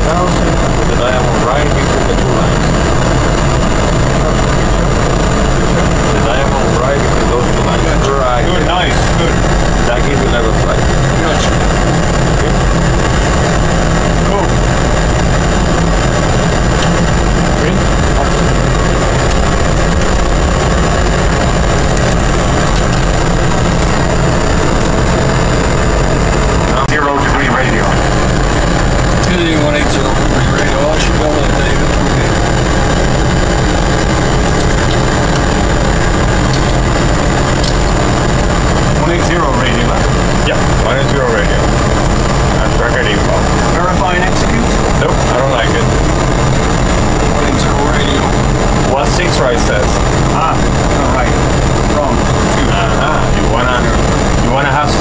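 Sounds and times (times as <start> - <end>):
jet engine and airflow rush: 0.0 - 55.0
low hum: 0.0 - 55.0
muffled voices: 0.0 - 55.0
thin high whine: 0.0 - 55.0.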